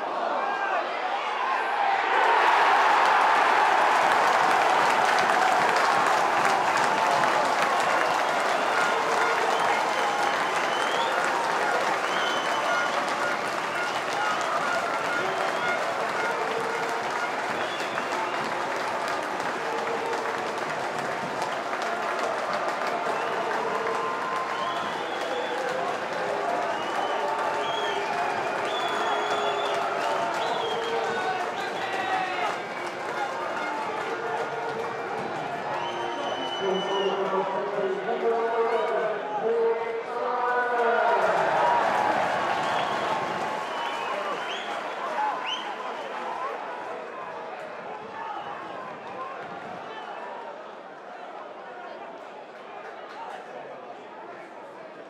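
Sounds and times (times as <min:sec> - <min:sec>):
crowd cheering and applauding: 0:00.0 - 0:55.0.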